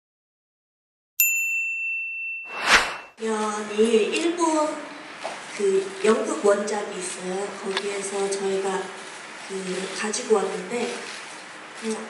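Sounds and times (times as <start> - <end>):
high logo chime ding: 1.2 - 3.1.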